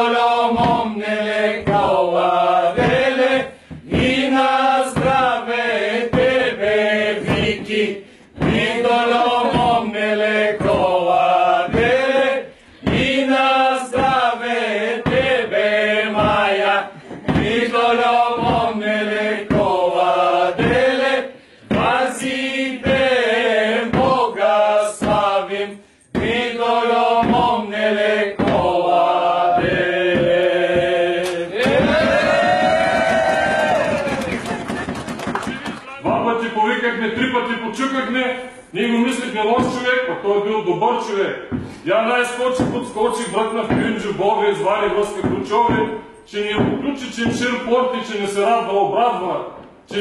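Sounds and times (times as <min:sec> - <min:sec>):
men singing a carol: 0:00.0 - 0:32.4, 0:41.2 - 0:49.1.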